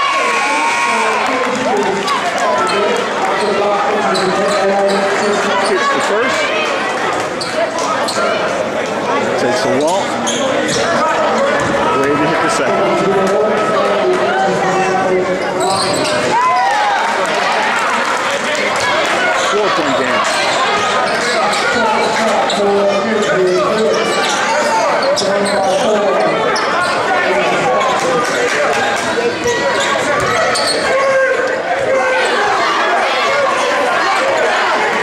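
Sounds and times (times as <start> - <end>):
crowd chatter: 0.0 - 35.0.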